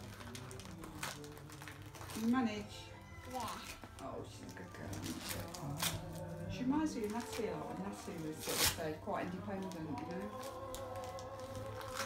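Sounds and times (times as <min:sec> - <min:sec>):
faint background music: 0:00.0 - 0:12.0.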